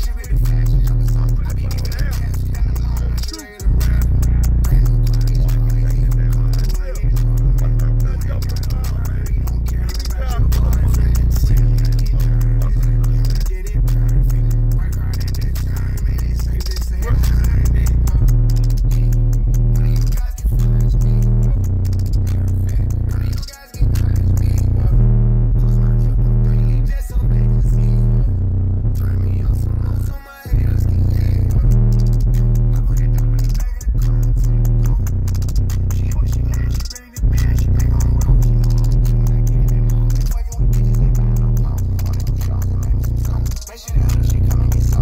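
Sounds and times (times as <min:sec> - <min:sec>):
bass-heavy music through subwoofers: 0:00.0 - 0:45.0.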